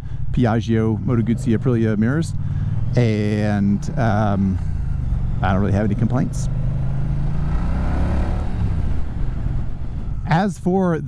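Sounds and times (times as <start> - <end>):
motorcycle engine running: 0.0 - 10.6
road and air noise: 0.0 - 11.0.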